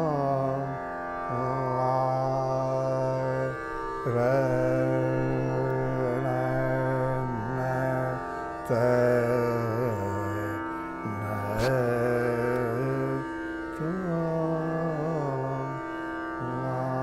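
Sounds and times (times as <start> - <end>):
man singing long held notes: 0.0 - 17.0
tanpura drone: 0.0 - 17.0.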